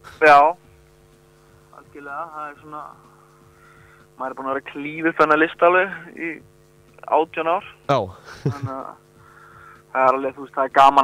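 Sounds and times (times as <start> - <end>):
faint steady hum: 0.0 - 11.0
man talking: 7.8 - 8.7.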